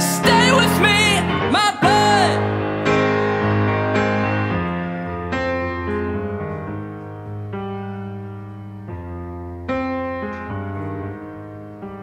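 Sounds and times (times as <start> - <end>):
piano playing slow chords: 0.0 - 12.0.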